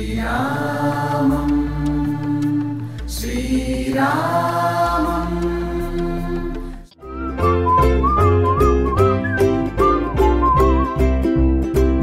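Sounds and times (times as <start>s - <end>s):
low drone and bass: 1.2s - 12.0s.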